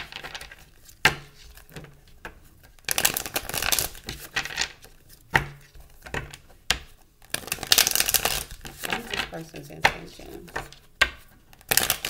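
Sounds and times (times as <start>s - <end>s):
cards riffle-shuffled: 0.0s - 12.0s.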